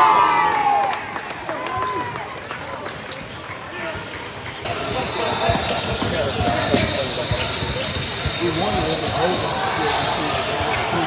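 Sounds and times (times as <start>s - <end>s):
voices of players and onlookers: 0.0s - 11.0s
basketball bouncing on wooden court: 4.7s - 9.4s.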